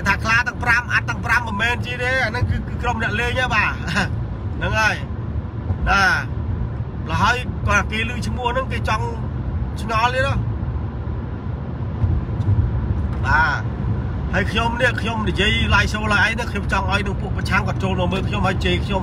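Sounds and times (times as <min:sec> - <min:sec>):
man speaking: 0:00.0 - 0:05.1, 0:07.0 - 0:10.4, 0:13.2 - 0:13.7, 0:14.3 - 0:19.0
car cabin rumble: 0:00.0 - 0:19.0.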